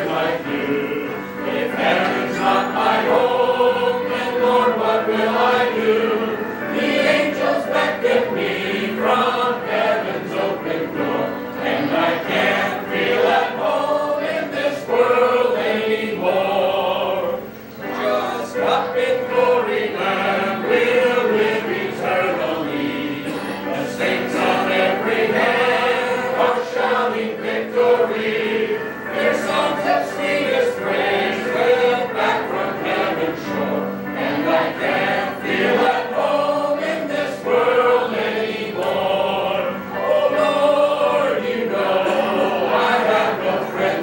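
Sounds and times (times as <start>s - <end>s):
group singing a hymn: 0.0s - 44.0s.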